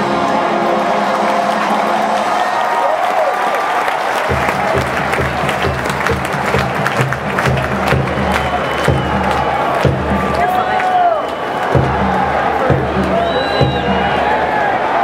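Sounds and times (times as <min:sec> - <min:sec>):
marching band music: 0:00.0 - 0:03.0, 0:03.7 - 0:14.7
crowd applause and cheering: 0:00.0 - 0:15.0.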